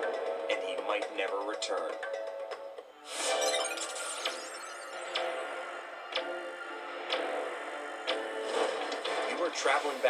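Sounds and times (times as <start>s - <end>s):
countdown ticking: 0.0s - 8.4s.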